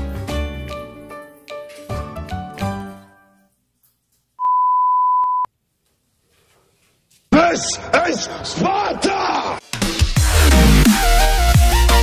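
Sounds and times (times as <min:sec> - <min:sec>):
background music: 0:00.0 - 0:03.5, 0:09.4 - 0:12.0.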